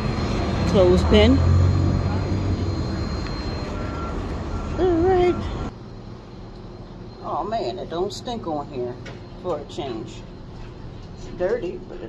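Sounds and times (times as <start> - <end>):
passing vehicles rumble: 0.0 - 5.8
short high beep: 1.5 - 5.6.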